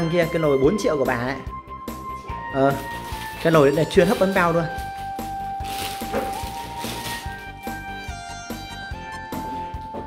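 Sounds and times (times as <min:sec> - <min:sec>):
background music with low beat: 0:01.1 - 0:10.0.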